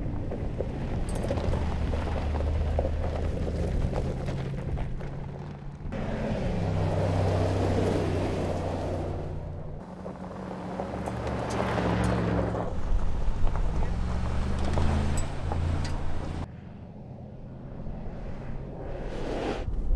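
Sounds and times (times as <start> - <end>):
tyres crunching on gravel: 0.0 - 6.0, 9.8 - 16.5.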